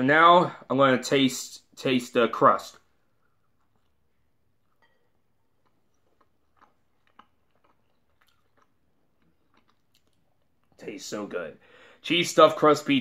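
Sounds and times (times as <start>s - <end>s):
faint chewing: 2.8s - 10.9s.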